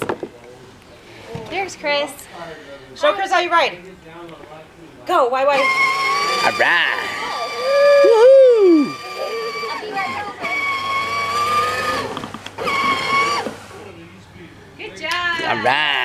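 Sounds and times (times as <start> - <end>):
toy electric motor whining: 5.5 - 13.6
person exclaiming: 7.6 - 8.9.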